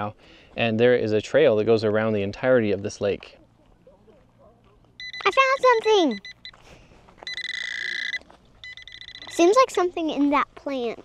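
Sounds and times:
metal detector buzzing beep: 0:05.0 - 0:06.6, 0:07.2 - 0:09.5.

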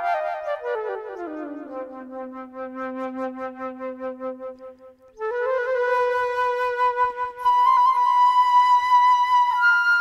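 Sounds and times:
solo flute: 0:00.0 - 0:10.0.

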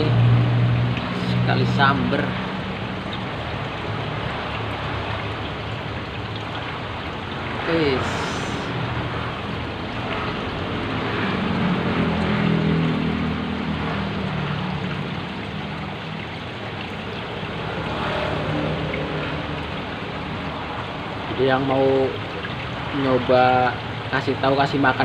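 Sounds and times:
aquarium filter water splashing: 0:00.0 - 0:25.0.

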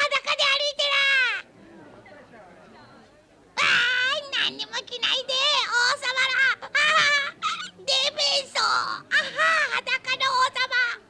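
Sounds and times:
cartoon child shouting: 0:00.0 - 0:01.4, 0:03.6 - 0:11.0
faint voices: 0:00.0 - 0:11.0.

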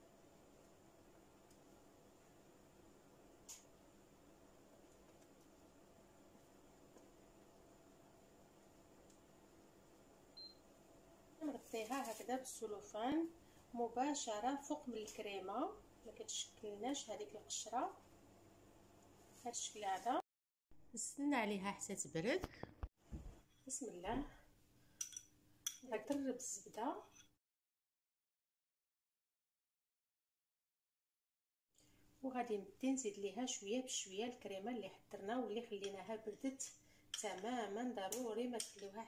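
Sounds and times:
faint steady hum: 0:12.6 - 0:19.5.

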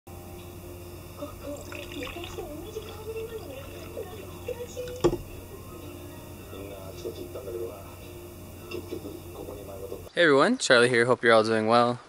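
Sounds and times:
low hum: 0:00.1 - 0:10.1
liquid pouring into paper cup: 0:01.2 - 0:05.4.

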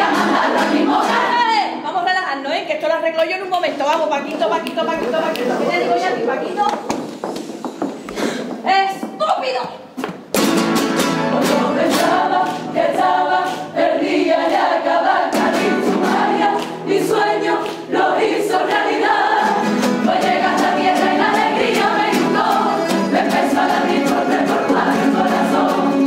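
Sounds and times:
strummed guitar: 0:00.0 - 0:01.4, 0:10.4 - 0:13.8, 0:19.4 - 0:26.0
choir singing: 0:00.0 - 0:01.8, 0:11.2 - 0:26.0.

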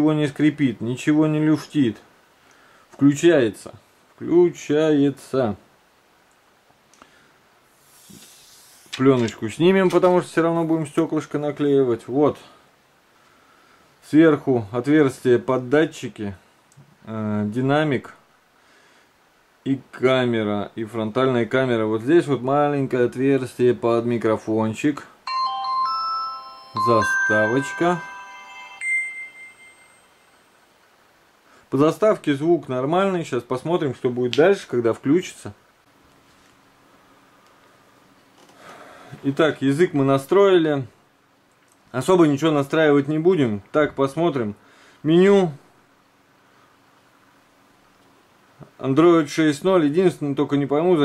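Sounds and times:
soft hiss: 0:00.0 - 0:51.0
smartphone boot-up jingle: 0:25.3 - 0:30.6.

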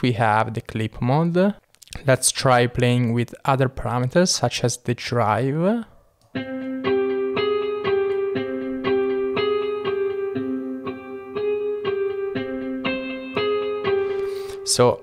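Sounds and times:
synthesizer melody: 0:06.4 - 0:14.7.

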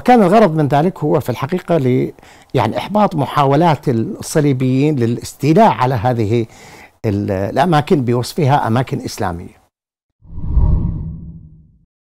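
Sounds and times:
whoosh sound effect: 0:10.3 - 0:11.7.

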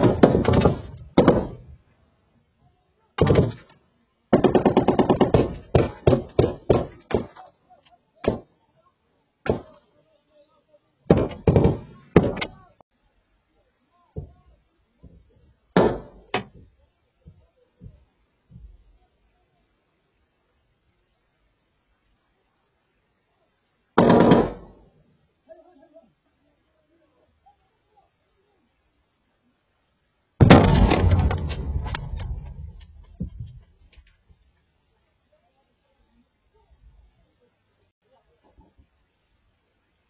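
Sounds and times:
automatic rifle gunfire: 0:24.0 - 0:24.8, 0:30.4 - 0:32.8
loud sudden bang: 0:30.4 - 0:33.1.

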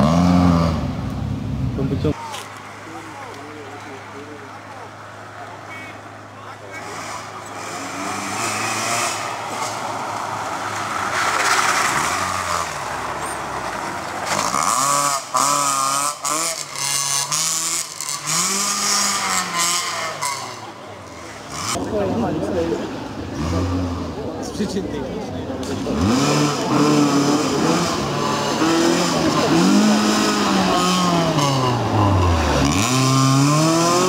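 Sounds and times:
rally car engine revving: 0:00.0 - 0:02.0, 0:06.7 - 0:34.0.

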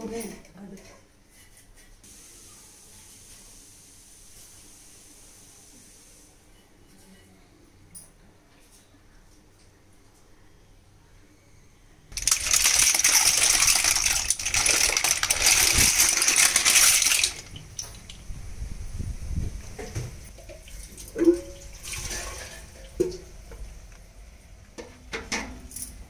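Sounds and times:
clam shells clattering: 0:12.2 - 0:18.0
water splashing: 0:12.2 - 0:18.2.

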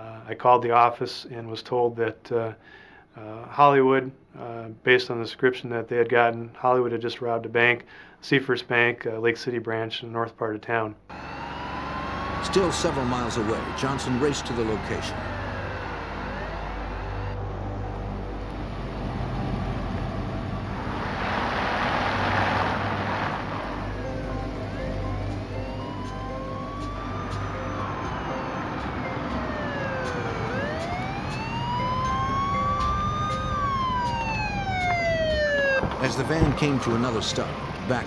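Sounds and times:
car engine rumble: 0:11.1 - 0:38.0
police siren wailing: 0:11.1 - 0:38.0
road noise: 0:11.1 - 0:38.0
rush of noise: 0:12.3 - 0:25.7.

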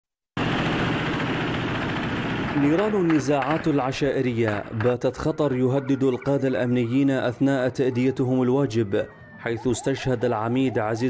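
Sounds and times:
vehicle engines running: 0:00.4 - 0:08.1.

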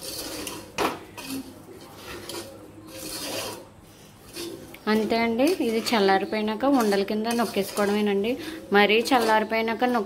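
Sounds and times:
spoon scraping in metal pan: 0:00.0 - 0:10.0.

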